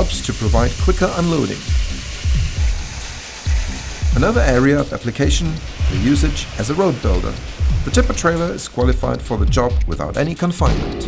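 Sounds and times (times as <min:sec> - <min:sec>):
gravel pouring: 0:00.0 - 0:10.6
background music with steady beat: 0:00.0 - 0:11.0.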